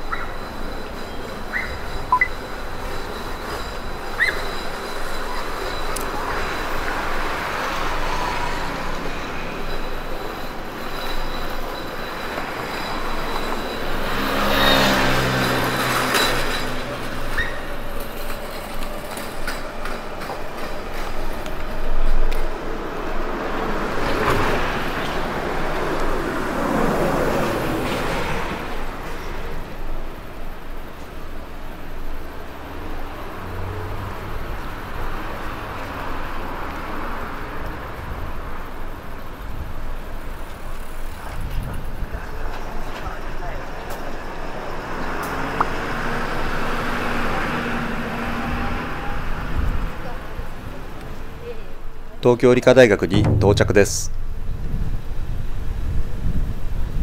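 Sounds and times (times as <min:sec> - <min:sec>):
vehicles passing: 0:00.0 - 0:55.3.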